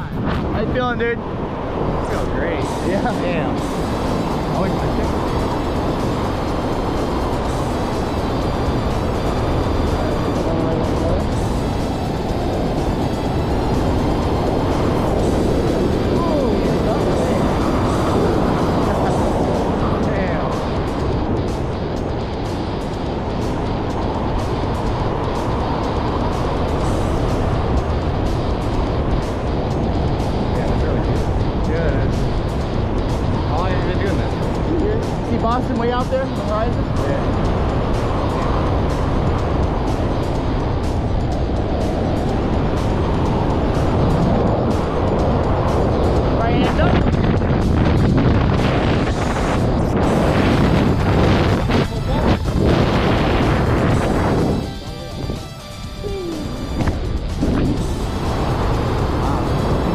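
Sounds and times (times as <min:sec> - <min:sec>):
wind rushing over microphone: 0:00.0 - 0:59.9.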